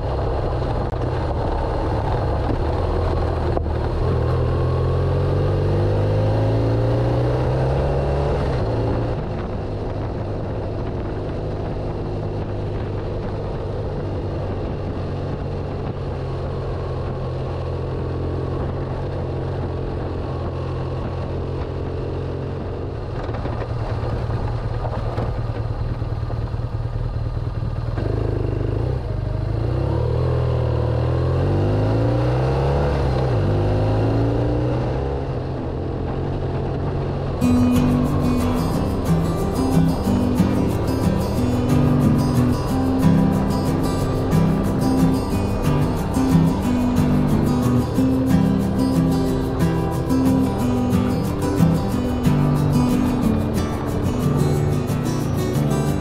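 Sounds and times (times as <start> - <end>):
motorcycle engine accelerating: 0.0 - 56.0
wind and road noise: 0.0 - 56.0.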